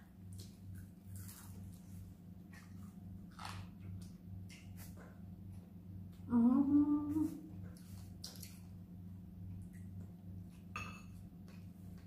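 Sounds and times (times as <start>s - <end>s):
woman humming: 6.3s - 7.6s.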